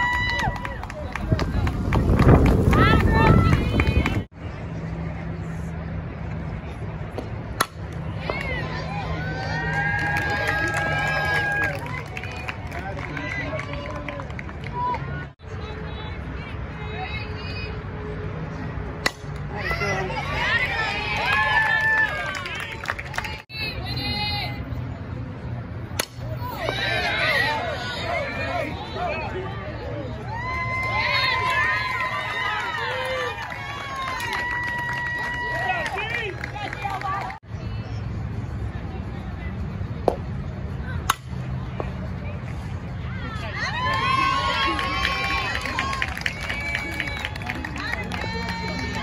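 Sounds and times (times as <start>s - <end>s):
people cheering and yelling: 0.0s - 4.3s, 8.1s - 15.3s, 19.5s - 24.6s, 26.3s - 37.4s, 43.0s - 49.0s
bat hitting ball: 25.9s - 26.8s, 41.1s - 41.4s.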